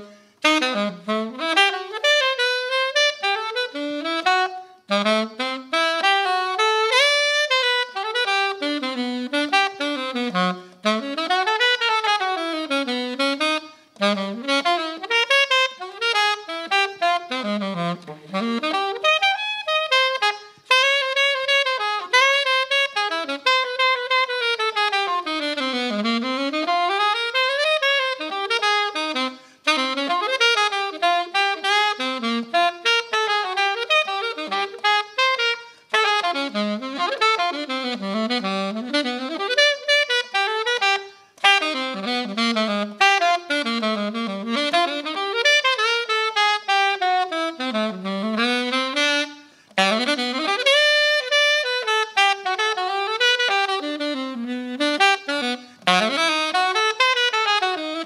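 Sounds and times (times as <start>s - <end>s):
alto saxophone jazz solo: 0.0s - 58.0s.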